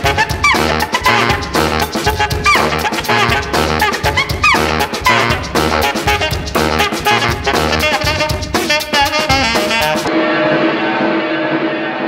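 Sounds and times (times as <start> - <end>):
swing music: 0.0 - 12.0.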